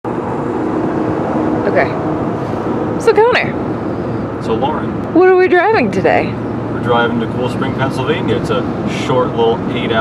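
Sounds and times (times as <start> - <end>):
road and engine noise in cab: 0.0 - 10.0.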